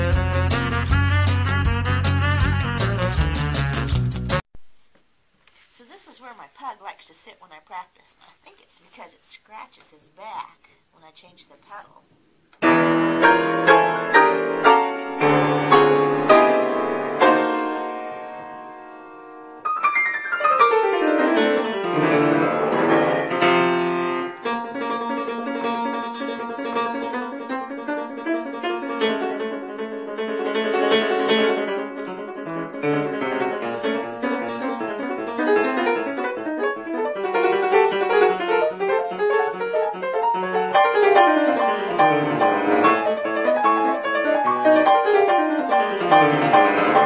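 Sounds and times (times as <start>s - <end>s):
piano playing: 0.0s - 4.4s, 12.6s - 47.0s.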